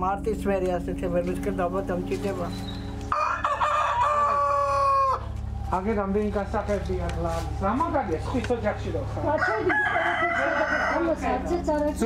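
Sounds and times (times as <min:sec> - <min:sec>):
rooster crowing: 0:03.1 - 0:05.4, 0:09.3 - 0:11.4.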